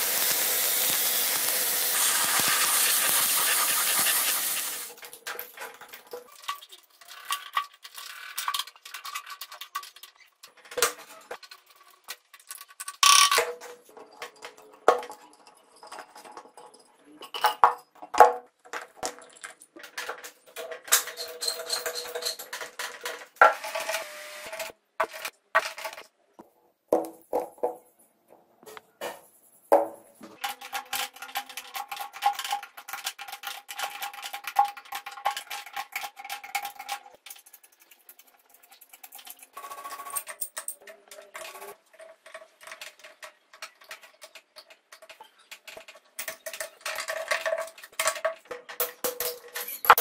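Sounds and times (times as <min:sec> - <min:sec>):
metal parts clinking on wood: 0:18.7 - 0:23.4, 0:30.3 - 0:50.0.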